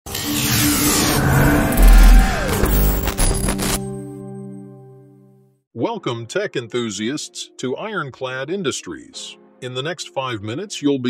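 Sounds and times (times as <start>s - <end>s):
steady tones: 0.7s - 4.0s
hissing whoosh: 0.9s - 3.2s.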